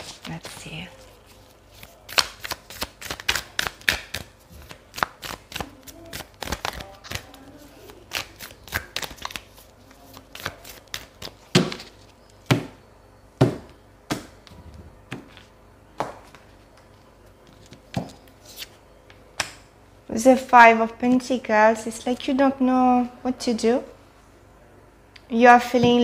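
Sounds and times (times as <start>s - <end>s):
cards being shuffled: 0.0s - 12.2s.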